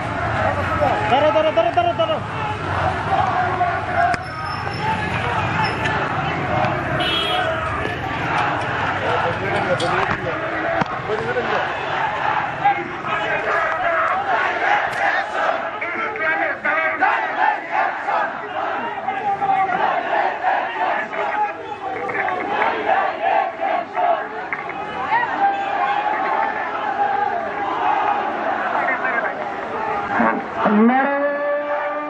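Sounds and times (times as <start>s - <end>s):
crowd of men shouting together: 0.0s - 32.0s.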